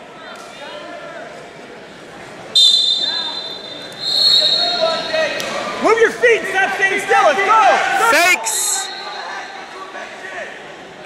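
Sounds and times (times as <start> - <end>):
voices in gym: 0.0 - 11.0
referee's whistle blasts: 2.6 - 5.2, 8.0 - 9.7.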